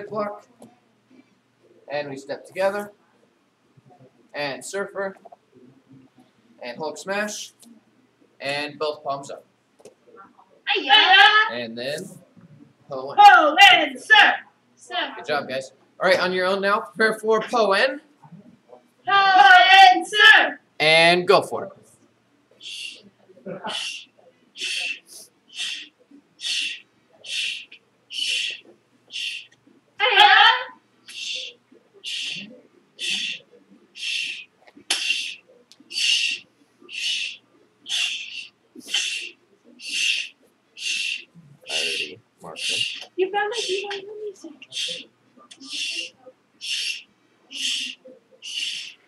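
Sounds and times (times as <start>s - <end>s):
sharp hissed breaths: 22.6s - 23.1s, 23.7s - 29.5s, 31.1s - 33.4s, 34.0s - 43.0s, 44.7s - 49.0s.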